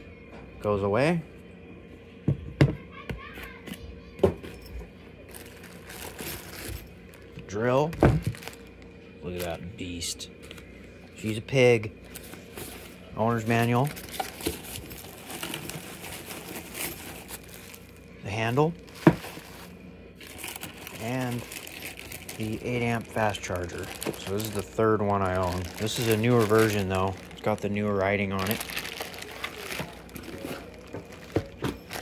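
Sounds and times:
plastic bag crinkling: 5.3s - 7.3s, 8.2s - 9.6s, 13.4s - 32.0s.

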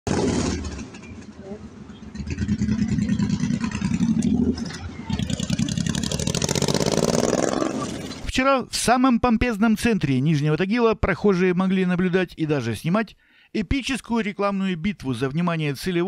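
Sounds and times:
street traffic: 0.0s - 8.4s.

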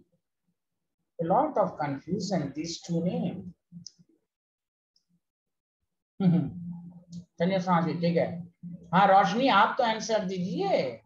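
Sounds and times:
murmured vocal sounds: 6.2s - 6.7s.

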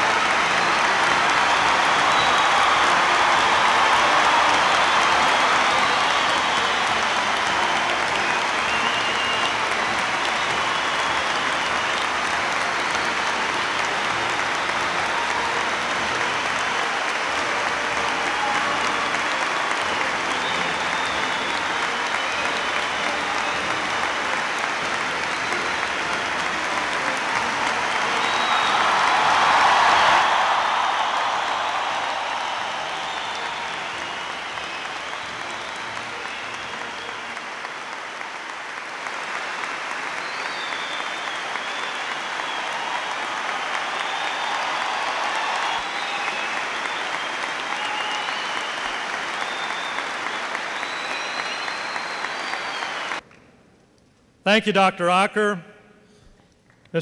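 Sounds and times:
audience applause: 0.0s - 53.2s.

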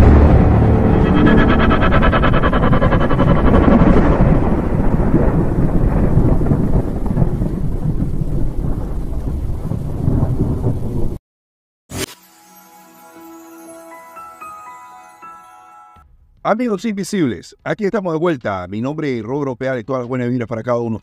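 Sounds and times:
deep rolling thunder rumble: 0.0s - 11.2s.

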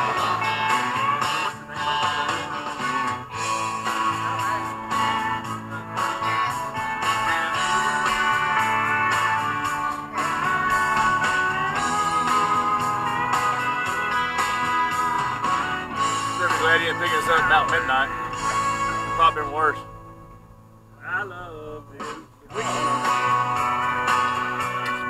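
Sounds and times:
band rhythm section: 0.0s - 25.0s
electric guitar lead with bends: 0.0s - 25.0s.

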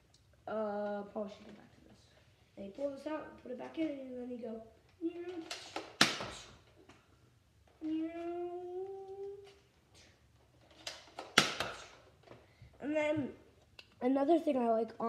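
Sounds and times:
toy blaster plastic snaps: 5.4s - 6.6s, 10.8s - 12.1s.

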